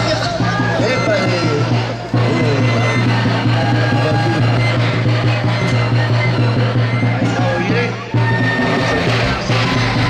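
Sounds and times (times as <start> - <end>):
bass drum: 0.0 - 10.0
wooden flutes playing melody: 0.0 - 10.0.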